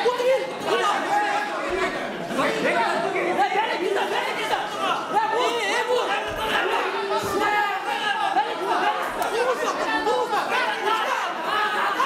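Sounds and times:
indoor crowd babble: 0.0s - 12.0s.

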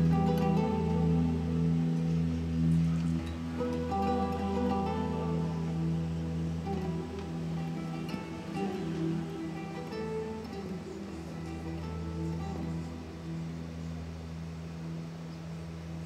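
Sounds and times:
fingerstyle acoustic guitar: 0.0s - 14.2s.

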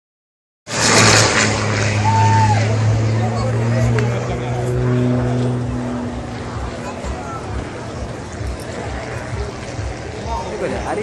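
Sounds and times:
propeller plane engine droning: 0.7s - 11.0s
onlookers' voices: 1.6s - 11.0s.

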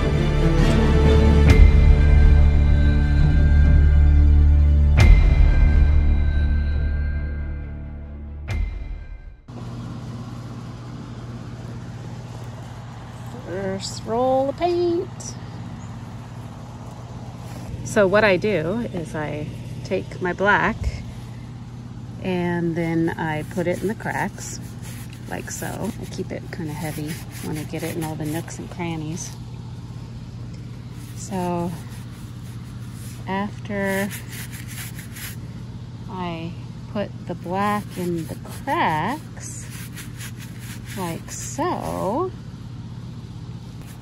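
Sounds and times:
air conditioning unit humming: 9.5s - 44.0s
stiff paintbrush scrubbing: 22.8s - 29.4s, 30.6s - 35.5s, 37.4s - 42.2s, 43.8s - 44.0s.

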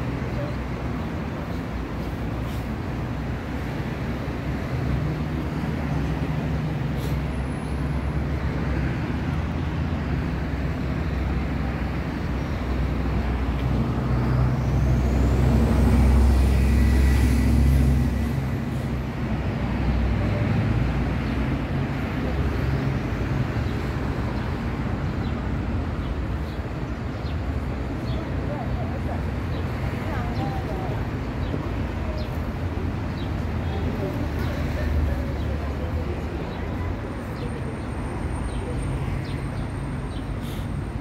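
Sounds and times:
passing vehicles rumbling: 0.0s - 41.0s.

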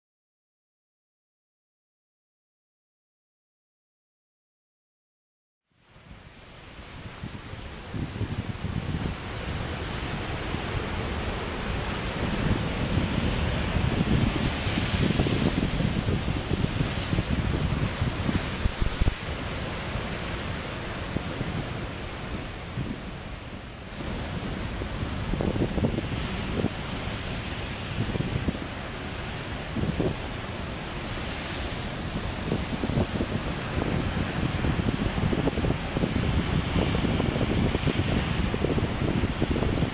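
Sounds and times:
wind rumbling on microphone: 5.9s - 39.9s
sea waves breaking on rocks: 6.7s - 39.9s.

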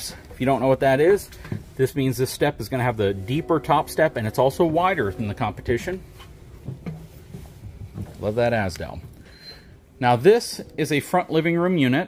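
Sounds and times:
footsteps on metal steps: 5.8s - 9.3s.

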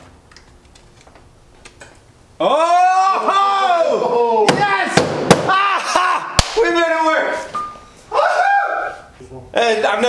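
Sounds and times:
man yelling and whooping: 2.4s - 7.5s, 8.1s - 9.1s
sharp smacks: 6.4s - 6.6s
short beep: 7.5s - 8.0s.

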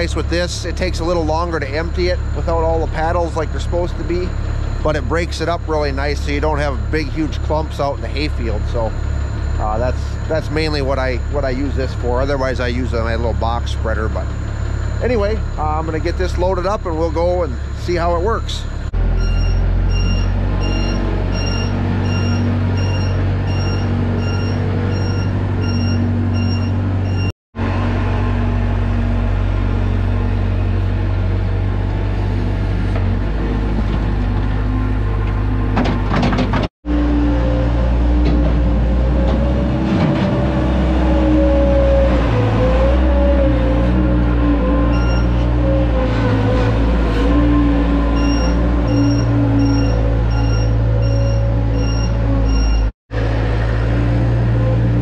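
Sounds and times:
beeping alarm: 0.0s - 27.3s, 44.9s - 45.4s, 48.1s - 52.9s
loader engine running: 0.0s - 55.0s.

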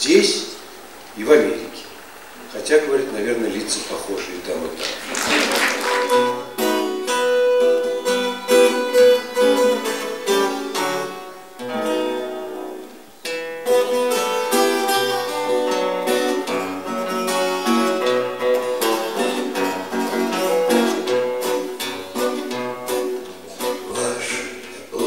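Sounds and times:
acoustic guitars picking: 0.0s - 25.0s.

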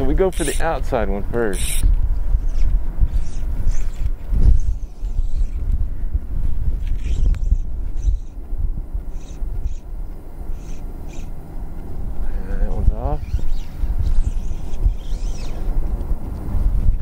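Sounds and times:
wind buffeting microphone: 0.0s - 17.0s
fly line swishes: 13.1s - 16.0s.

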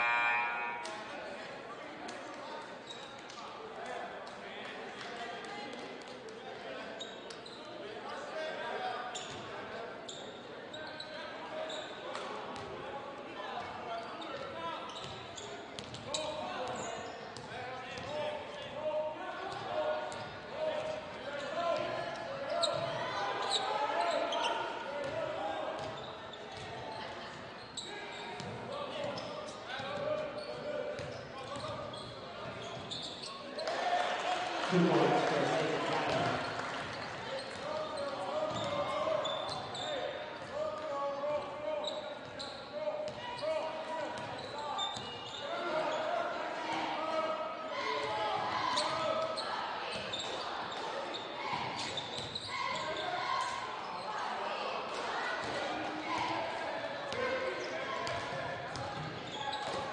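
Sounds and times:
crowd chatter: 0.0s - 59.9s
players' voices: 0.0s - 59.9s.

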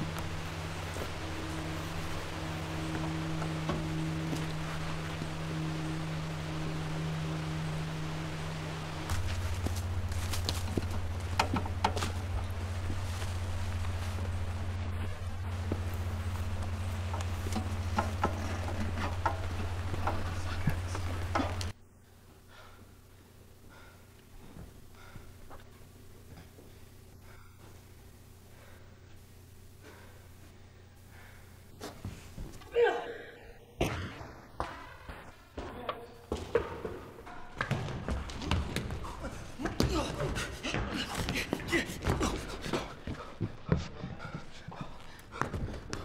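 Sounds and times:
low drone of held tones: 0.0s - 22.1s.

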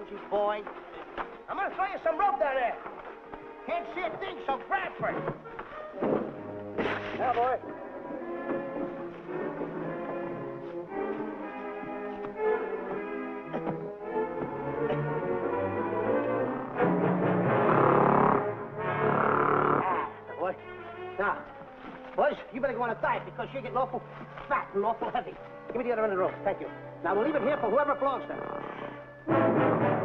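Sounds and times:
orchestral music led by brass: 0.0s - 30.0s.

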